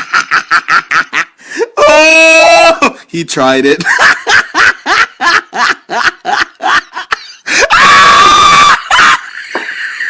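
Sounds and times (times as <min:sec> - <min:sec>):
person laughing: 0:00.0 - 0:01.8, 0:03.8 - 0:10.0
high-pitched scream: 0:07.6 - 0:09.2.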